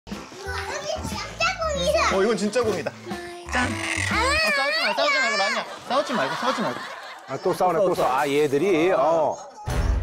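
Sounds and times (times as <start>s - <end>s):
young children chattering: 3.4s - 5.8s.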